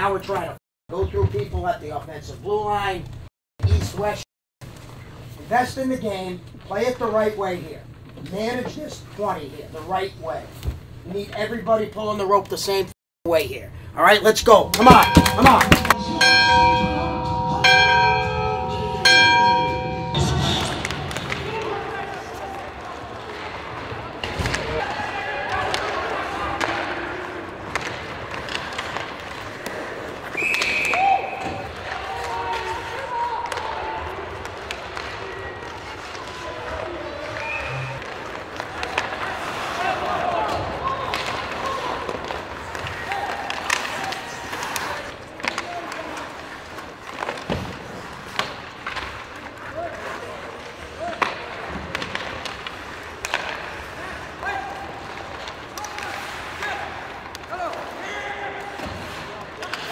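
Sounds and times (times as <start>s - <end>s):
hockey sticks and puck clacking: 14.4s - 17.3s, 18.6s - 59.9s.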